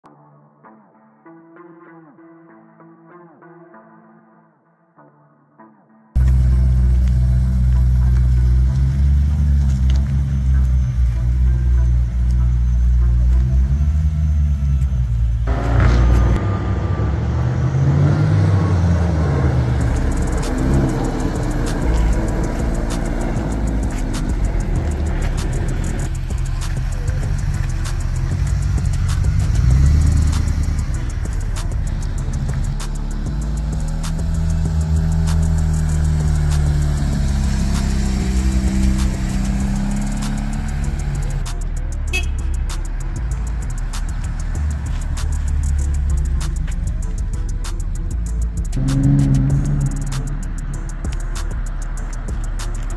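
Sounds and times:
music: 0.0s - 52.9s
car engines revving past: 6.2s - 52.9s.

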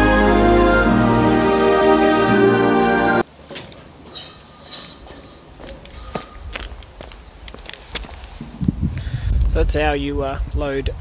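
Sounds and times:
footsteps on metal ramps: 2.8s - 8.6s
footsteps on concrete: 5.0s - 8.8s.

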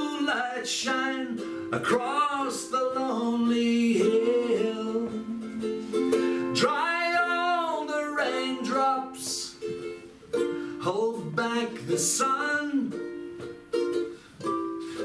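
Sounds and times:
man singing country song: 0.0s - 9.6s, 10.6s - 13.0s
strummed ukulele: 0.0s - 15.0s.

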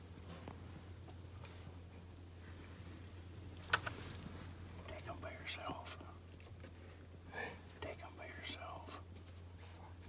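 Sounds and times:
faint low hum: 0.0s - 10.0s
person whispering: 4.8s - 6.2s, 7.4s - 9.0s.

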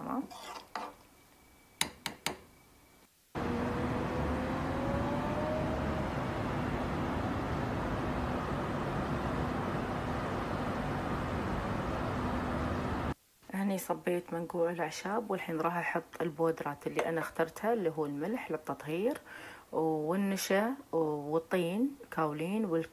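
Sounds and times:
faint rising tone: 2.6s - 13.2s
road traffic and city noise: 3.4s - 13.2s.

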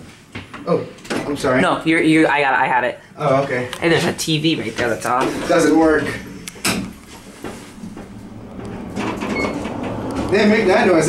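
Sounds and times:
elevator running hum: 7.2s - 11.0s
elevator knock: 7.8s - 10.3s.

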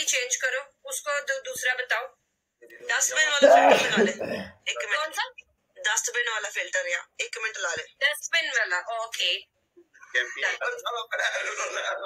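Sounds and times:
person clearing throat: 3.4s - 4.6s.

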